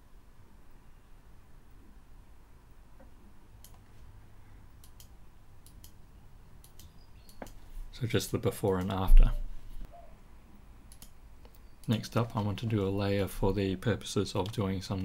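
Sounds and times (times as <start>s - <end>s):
computer mouse clicks: 3.0s - 3.9s, 4.8s - 6.0s, 6.6s - 7.6s, 8.6s - 9.1s, 10.9s - 12.8s, 14.4s - 15.0s.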